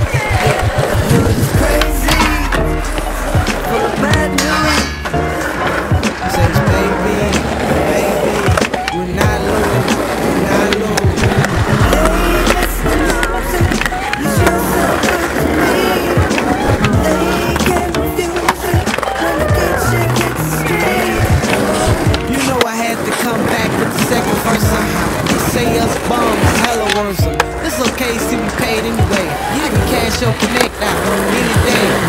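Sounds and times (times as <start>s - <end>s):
hip-hop track with rap vocals: 0.0s - 32.0s
skateboard knocking on concrete: 0.0s - 32.0s
skateboard wheels rolling: 0.0s - 32.0s.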